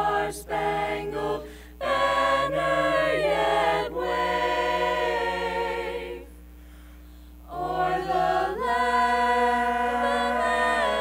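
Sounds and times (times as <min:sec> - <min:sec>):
vocal group singing in harmony: 0:00.0 - 0:06.4, 0:07.4 - 0:11.0.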